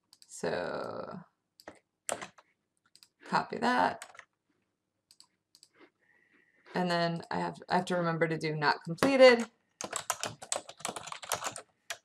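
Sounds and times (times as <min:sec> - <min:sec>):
typing on computer keyboard: 0:01.6 - 0:03.2, 0:04.0 - 0:04.3, 0:09.0 - 0:12.0.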